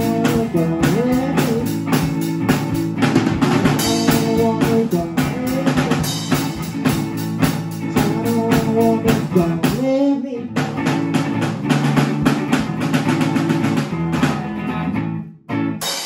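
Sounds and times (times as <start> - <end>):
drum kit beat: 0.0 - 16.0
held guitar notes: 0.0 - 16.0.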